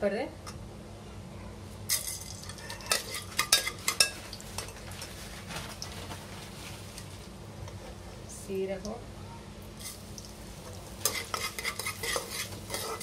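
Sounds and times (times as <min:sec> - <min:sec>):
spoon scraping inside a metal pot: 0:02.5 - 0:04.8, 0:11.0 - 0:13.0.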